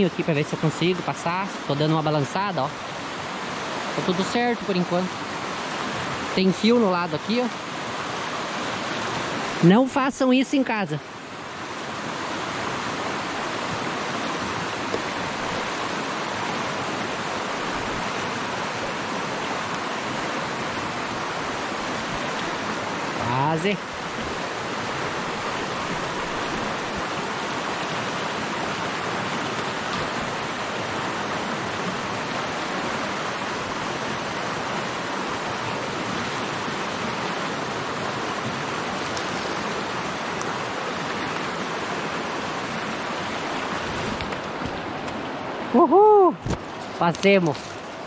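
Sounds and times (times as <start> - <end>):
river water rushing: 0.0 - 48.0
man's voice: 23.2 - 23.8.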